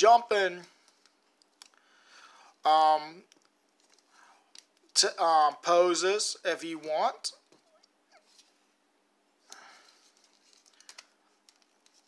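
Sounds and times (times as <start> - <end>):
faint rustle of handling plastic: 0.4 - 2.6, 3.2 - 5.0, 7.4 - 12.0.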